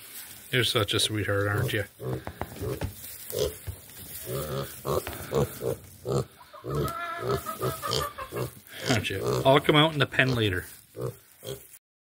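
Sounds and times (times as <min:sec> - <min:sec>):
pig grunting: 0:01.4 - 0:11.8.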